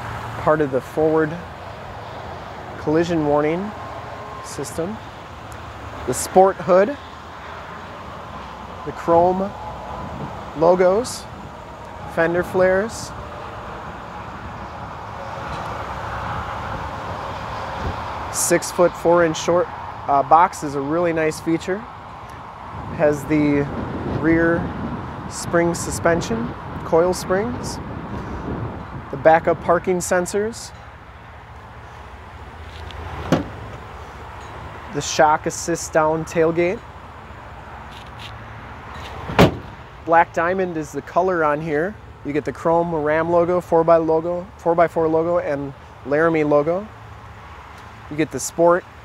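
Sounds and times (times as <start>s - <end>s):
road traffic rumble: 0.0s - 49.0s
tailgate slamming shut: 33.2s - 33.8s, 39.2s - 39.8s.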